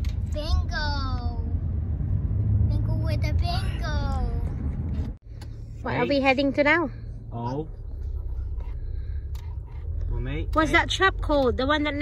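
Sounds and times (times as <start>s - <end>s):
car engine rumble: 0.0s - 12.0s
road noise inside cabin: 0.0s - 12.0s.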